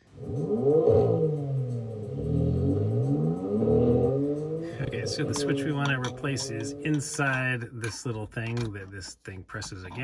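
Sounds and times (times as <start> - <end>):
engine revving sound effect: 0.0 - 7.2
person speaking: 4.7 - 10.0.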